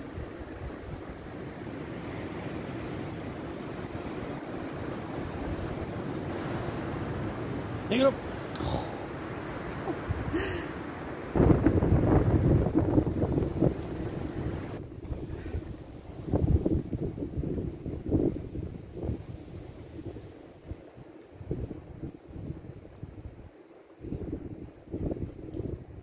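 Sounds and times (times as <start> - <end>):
wind buffeting microphone: 9.2 - 26.0.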